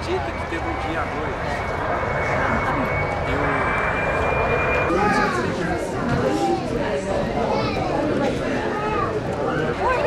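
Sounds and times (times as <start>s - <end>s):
airplane flying low overhead: 0.0s - 7.8s.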